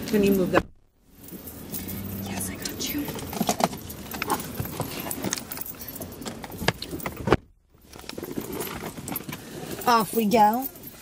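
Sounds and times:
small objects clinking and rattling: 0:01.2 - 0:07.2.

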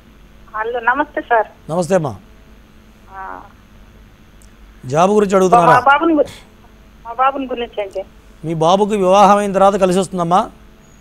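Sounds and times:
man speaking: 0:01.7 - 0:02.2, 0:04.8 - 0:06.4, 0:08.4 - 0:10.6
person speaking over telephone: 0:05.0 - 0:06.3.

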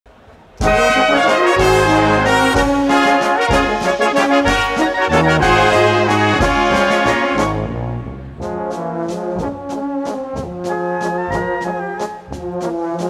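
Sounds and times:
brass band playing: 0:00.6 - 0:13.0
tuba bass line: 0:00.6 - 0:13.0.

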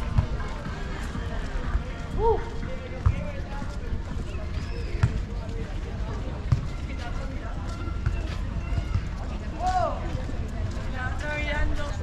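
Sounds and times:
footsteps on paving stones: 0:00.0 - 0:12.0.

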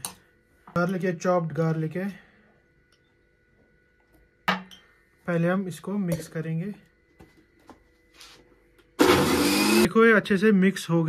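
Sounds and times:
mixer grinder motor: 0:09.0 - 0:09.9.

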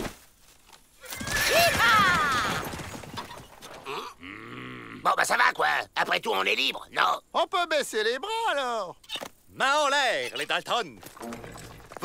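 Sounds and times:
cartoon horses riding off: 0:01.0 - 0:04.2, 0:11.0 - 0:12.0
horse whinnying: 0:01.0 - 0:05.0.

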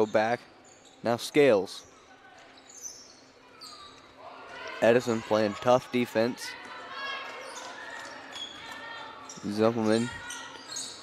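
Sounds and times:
sneaker squeaks on gym floor: 0:00.0 - 0:04.2, 0:07.4 - 0:11.0.

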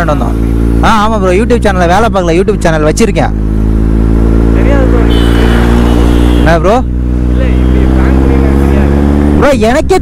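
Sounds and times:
low engine-like hum: 0:00.0 - 0:09.6
man speaking: 0:04.5 - 0:05.8, 0:06.4 - 0:10.0.

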